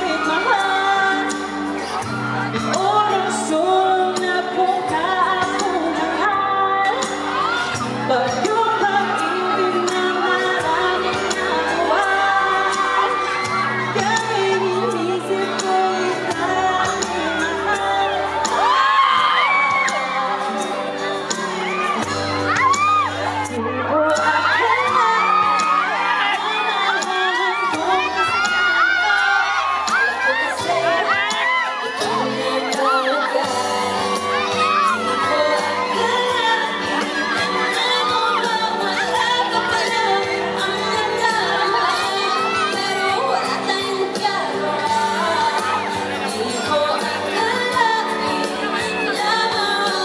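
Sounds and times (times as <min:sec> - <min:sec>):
backing music: 0:00.0 - 0:50.0
crowd cheering and screaming: 0:00.0 - 0:50.0
woman singing into microphone: 0:00.0 - 0:50.0.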